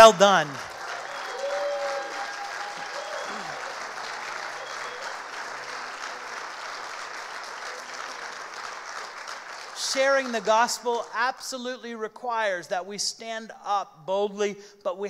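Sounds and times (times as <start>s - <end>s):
person speaking: 0.0s - 0.6s
congregation applauding: 0.0s - 11.1s.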